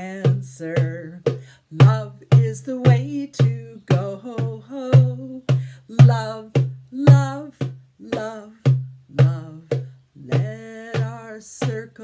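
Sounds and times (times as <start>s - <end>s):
song with singing and instruments: 0.0s - 12.0s.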